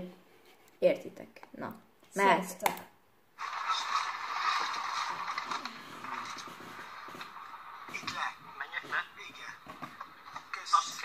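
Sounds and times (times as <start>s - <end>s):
muffled tv voices: 3.4s - 11.0s.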